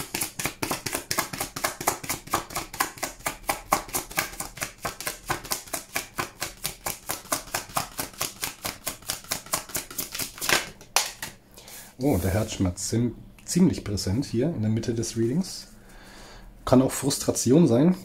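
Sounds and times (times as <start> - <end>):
cards being shuffled: 0.0 - 11.4.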